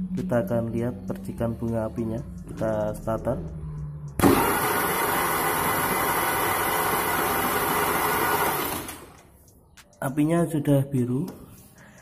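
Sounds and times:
electric starter cranking engine: 0:04.2 - 0:09.3.

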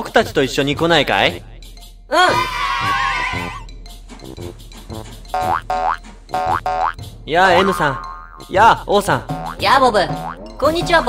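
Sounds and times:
cheerful children's music: 0:00.0 - 0:11.0
cartoon boing sound effect: 0:05.4 - 0:07.0, 0:07.6 - 0:08.5, 0:09.4 - 0:10.5.

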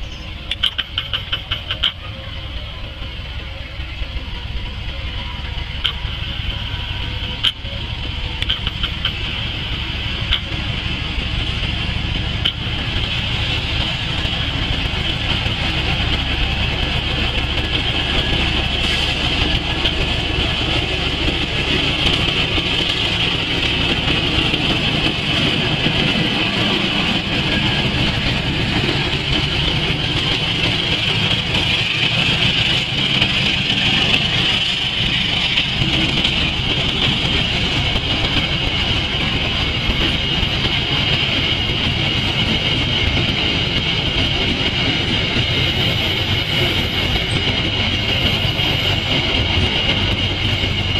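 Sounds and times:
diesel locomotive engine: 0:00.0 - 0:50.9
train wheels on rails: 0:00.0 - 0:50.9.

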